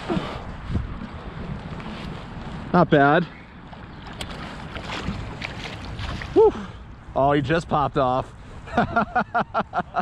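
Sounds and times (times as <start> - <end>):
wind rumble on microphone: 0.0 - 9.0.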